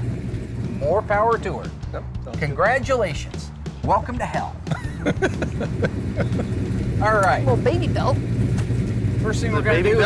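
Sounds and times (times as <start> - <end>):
car engine idling: 0.0 - 2.2, 4.7 - 10.0.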